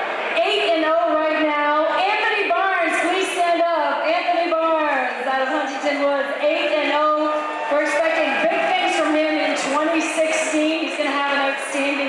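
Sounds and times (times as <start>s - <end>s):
woman announcing over microphone: 0.4s - 12.0s.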